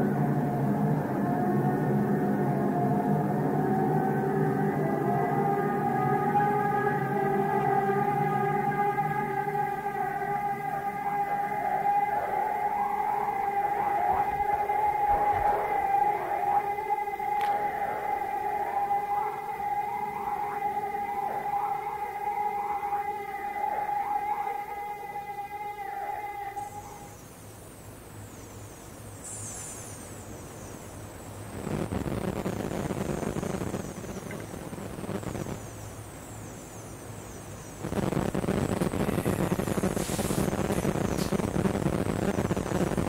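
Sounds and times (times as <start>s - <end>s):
swooping siren-like pitch glides: 0.0s - 27.2s
drone music sustained tones: 0.0s - 31.5s.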